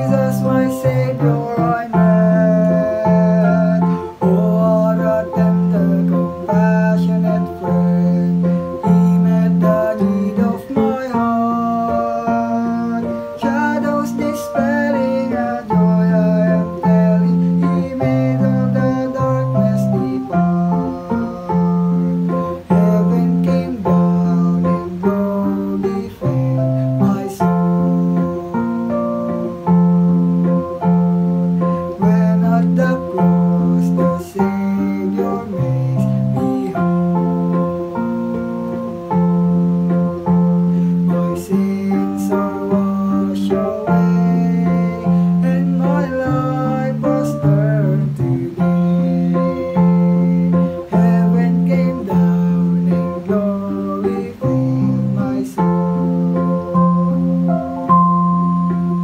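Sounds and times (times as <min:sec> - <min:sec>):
instrumental accompaniment with bass beat: 0:00.0 - 0:59.0
man singing a hymn: 0:00.0 - 0:59.0.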